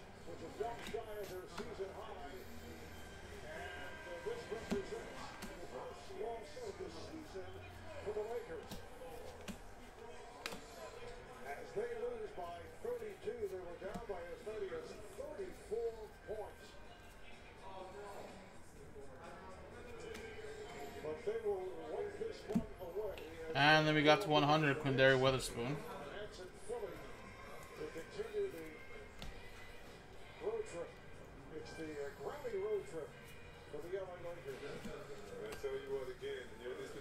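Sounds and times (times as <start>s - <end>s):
quiet music: 0.0s - 37.0s.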